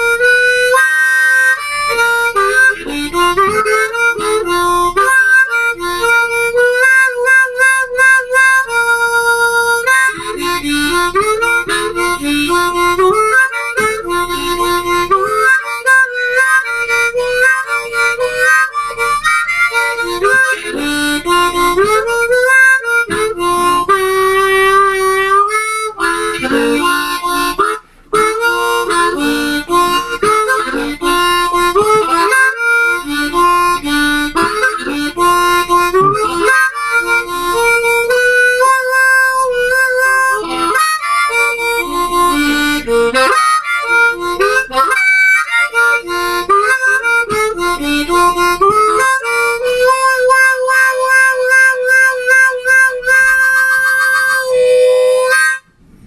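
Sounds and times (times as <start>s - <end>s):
blues harmonica playing: 0.0s - 56.0s.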